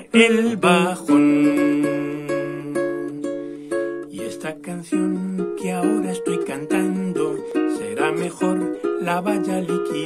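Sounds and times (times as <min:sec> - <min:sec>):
classical guitar strummed and picked: 0:00.0 - 0:10.0.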